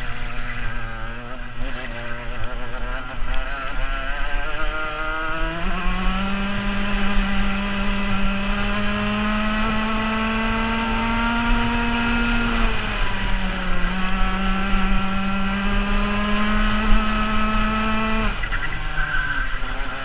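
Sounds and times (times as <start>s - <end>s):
kart engine revving: 0.0s - 20.0s.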